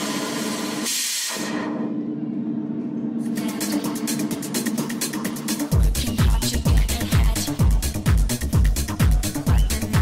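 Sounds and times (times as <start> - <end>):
held synth chords: 1.8 - 10.0
ticking hi-hats: 3.3 - 10.0.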